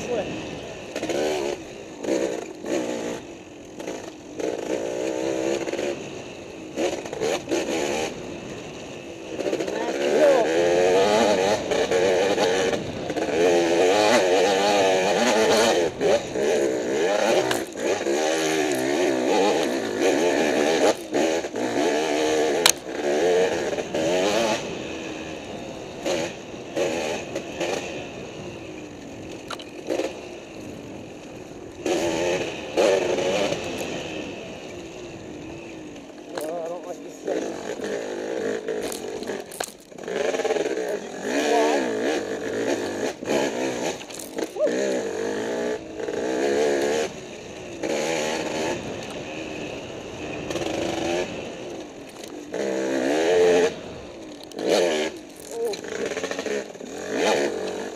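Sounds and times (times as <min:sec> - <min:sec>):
dirt bike engine revving: 0:00.0 - 0:57.9.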